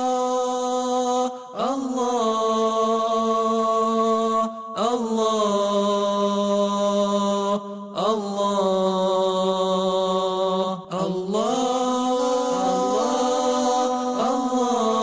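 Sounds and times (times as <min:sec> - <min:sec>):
person chanting long notes: 0:12.3 - 0:15.0.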